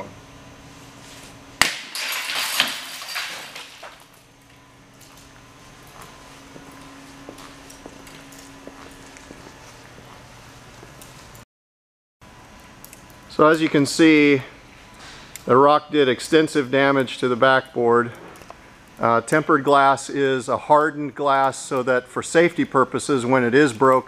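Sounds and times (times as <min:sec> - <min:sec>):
glass fragments clinking: 0:01.6 - 0:04.0
glass shattering: 0:01.6 - 0:04.0
rock hitting glass: 0:01.6 - 0:04.0.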